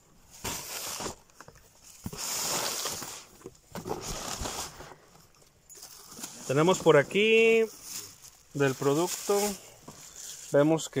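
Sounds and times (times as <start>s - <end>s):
plastic bag rustling: 0.2s - 11.0s
cardboard box opening: 0.4s - 5.0s.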